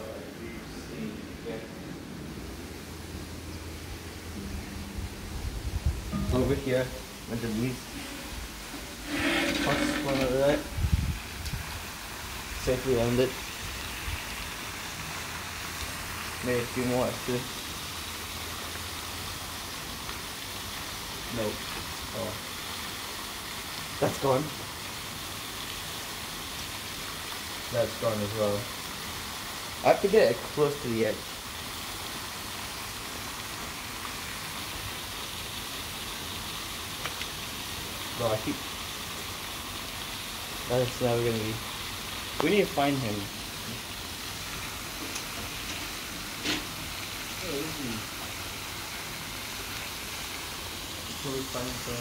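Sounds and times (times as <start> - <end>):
fountain water spraying: 0.0 - 52.0
steady outdoor hiss: 0.0 - 52.0.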